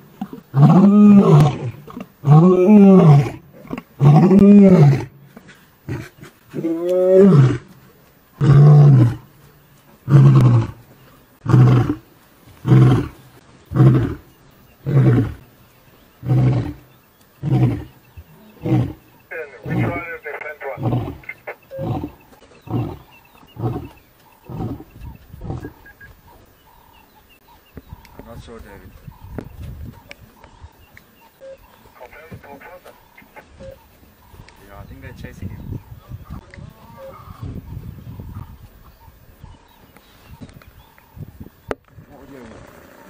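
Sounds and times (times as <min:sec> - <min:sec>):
lion roaring: 0:00.2 - 0:05.1, 0:05.9 - 0:07.7, 0:08.4 - 0:09.3, 0:10.0 - 0:10.8, 0:11.4 - 0:12.0, 0:12.6 - 0:14.2, 0:14.8 - 0:15.5, 0:16.2 - 0:25.8.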